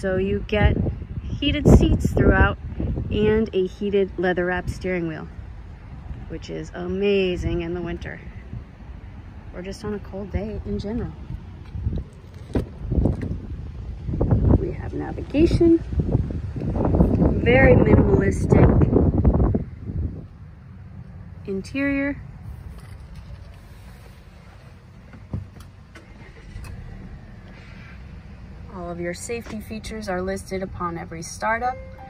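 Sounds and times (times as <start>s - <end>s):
wind rumbling on microphone: 0.0s - 31.6s
car engine idling: 3.6s - 32.0s
car engine starting: 7.7s - 32.0s
car door swinging open: 11.6s - 13.5s.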